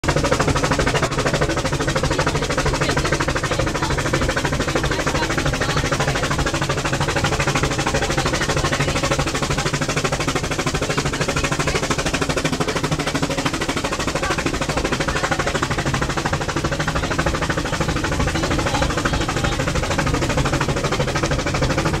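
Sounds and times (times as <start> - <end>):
train chugging and clattering: 0.0 - 22.0.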